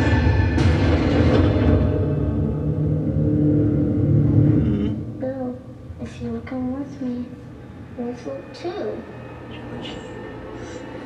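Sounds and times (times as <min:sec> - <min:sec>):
low rumbling drone with held tones: 0:00.0 - 0:11.0.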